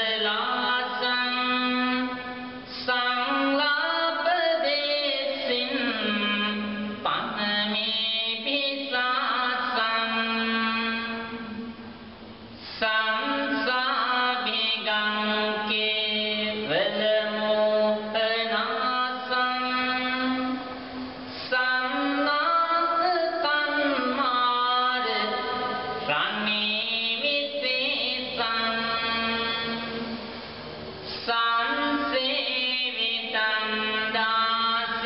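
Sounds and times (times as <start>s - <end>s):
voice chanting long notes: 0.0s - 12.0s, 12.6s - 35.0s
steady drone: 9.6s - 35.0s
person chanting one long note: 21.5s - 30.3s.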